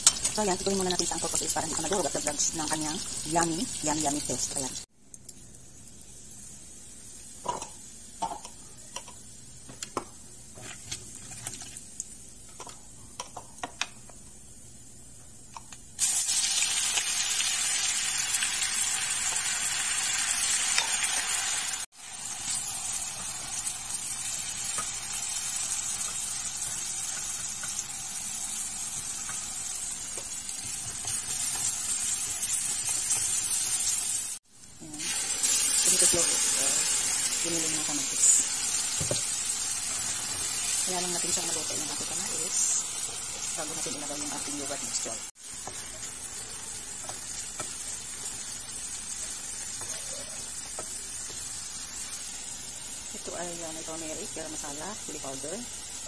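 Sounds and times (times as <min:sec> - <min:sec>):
hot oil sizzling: 0:00.0 - 0:56.0.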